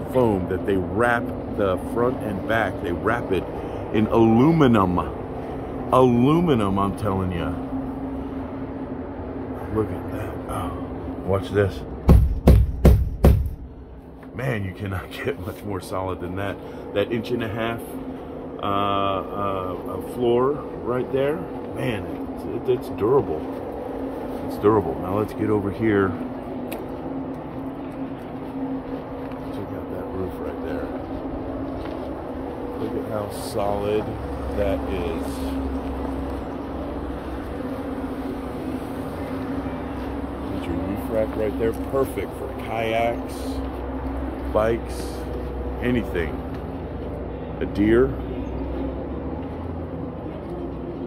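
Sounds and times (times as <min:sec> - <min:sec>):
outdoor rumble: 0:00.0 - 0:51.0
fist knocking on wall panel: 0:12.1 - 0:13.5.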